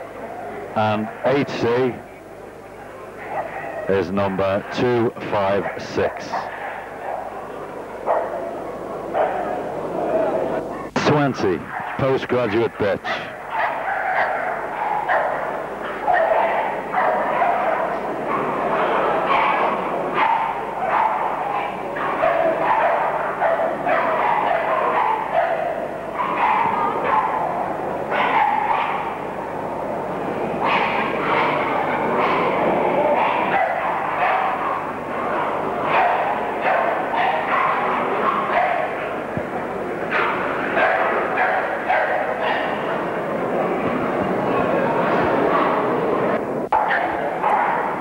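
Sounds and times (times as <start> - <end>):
dogs barking: 3.0 - 48.0.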